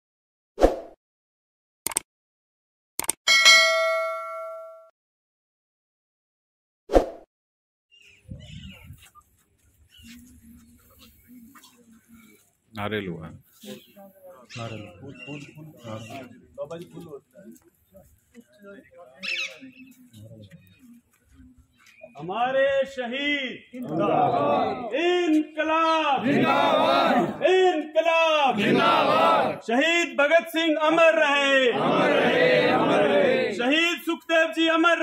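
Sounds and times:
notification bell ding: 0:03.3 - 0:04.9
faint murmuring voices: 0:08.6 - 0:12.7, 0:13.4 - 0:22.2.

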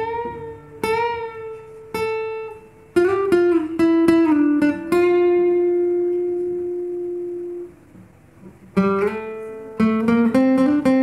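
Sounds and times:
acoustic guitar note ringing: 0:00.0 - 0:11.0.

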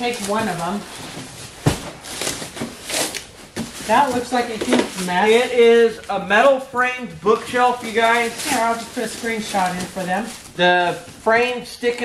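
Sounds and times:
cardboard and plastic wrap rustling: 0:00.0 - 0:12.0
cardboard box thud: 0:01.5 - 0:02.8.

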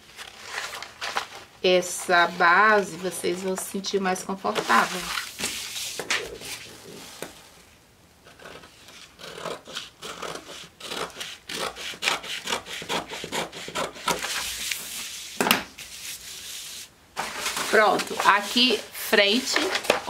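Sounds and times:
paper crackle: 0:00.0 - 0:03.5, 0:04.5 - 0:07.3
paper rustling: 0:00.0 - 0:03.8, 0:04.4 - 0:07.5, 0:14.2 - 0:20.0
scissors snipping paper: 0:08.3 - 0:14.8.

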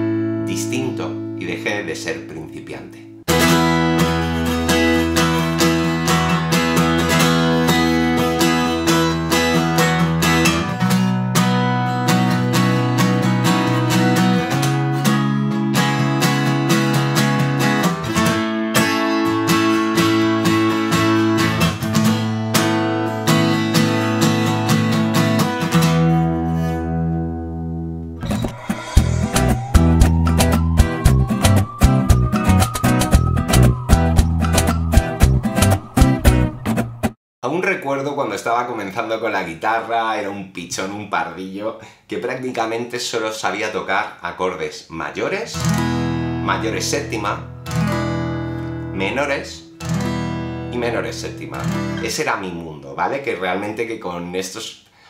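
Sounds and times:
acoustic guitar strumming chords: 0:03.3 - 0:37.2, 0:45.6 - 0:52.1.

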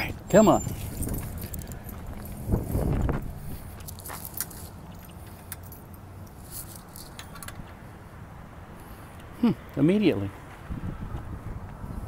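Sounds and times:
light metallic jingling: 0:00.0 - 0:02.4, 0:03.8 - 0:07.6.

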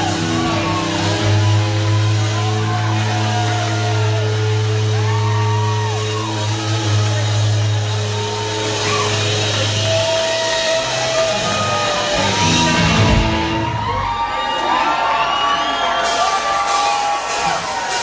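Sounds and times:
electric guitar bending notes: 0:00.0 - 0:14.2
crowd whooping and cheering: 0:00.0 - 0:18.0
live rock band: 0:00.0 - 0:18.0.

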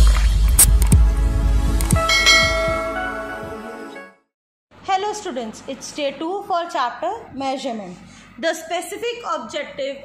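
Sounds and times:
bright chime-like tone: 0:02.0 - 0:03.4.

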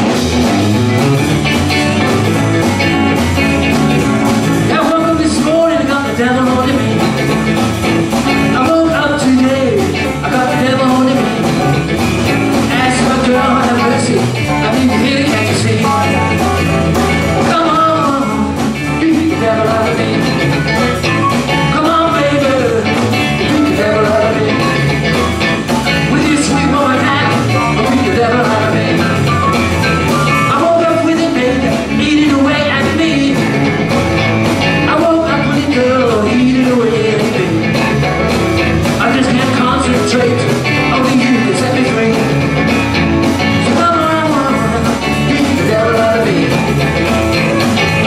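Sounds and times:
live blues band playing: 0:00.0 - 0:48.0.

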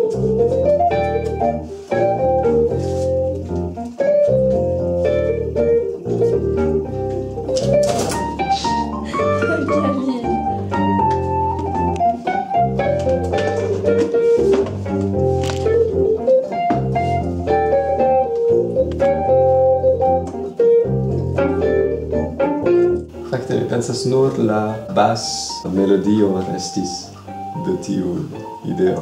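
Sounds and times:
organ keyboard music: 0:00.0 - 0:29.0.

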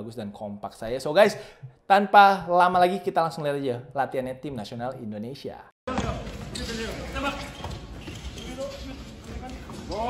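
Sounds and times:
basketball bouncing: 0:05.9 - 0:10.0
players' voices and calls: 0:05.9 - 0:10.0.

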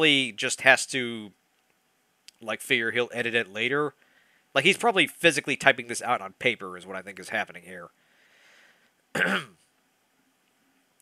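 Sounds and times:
man clearing throat: 0:09.2 - 0:09.6.

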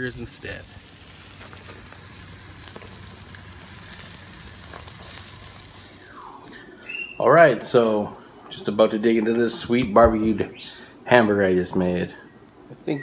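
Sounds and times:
burger patties sizzling on grill: 0:00.0 - 0:06.3.

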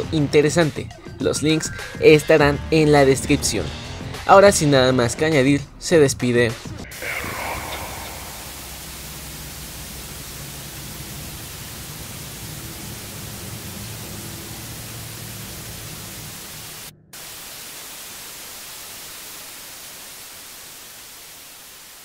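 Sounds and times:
white noise static hiss: 0:06.9 - 0:22.0.

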